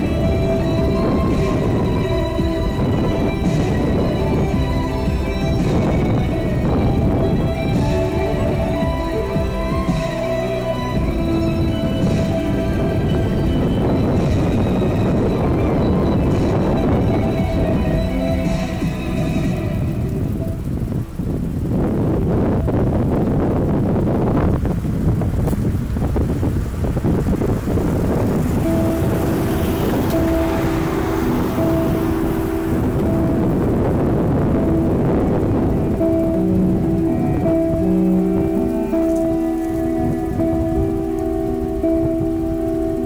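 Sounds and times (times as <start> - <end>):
music on a radio: 0.0 - 21.1, 27.7 - 43.0
wind buffeting microphone: 0.0 - 43.0.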